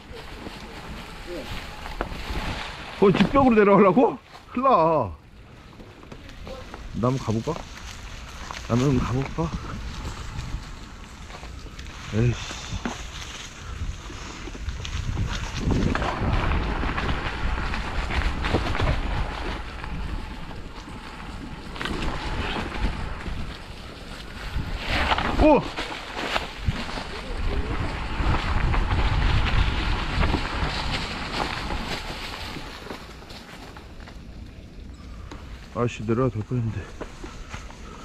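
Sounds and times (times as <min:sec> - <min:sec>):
wind rumble on microphone: 0:00.0 - 0:04.2, 0:05.2 - 0:38.0
tyres rolling over dry leaves: 0:00.0 - 0:38.0.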